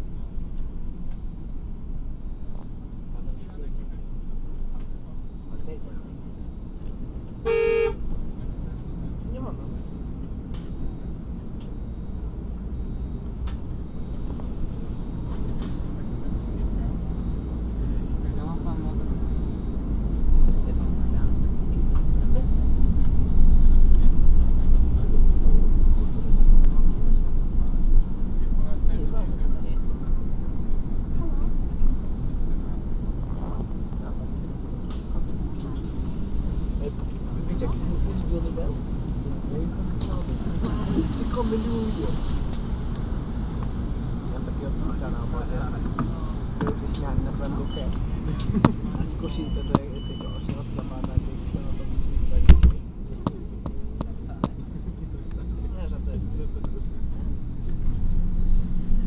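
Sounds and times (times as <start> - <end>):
bus engine rumble: 0.0 - 59.0
short horn toot: 7.4 - 8.0.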